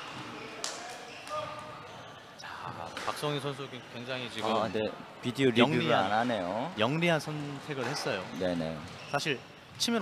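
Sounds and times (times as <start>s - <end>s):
shoe squeak on wooden floor: 8.8s - 9.7s.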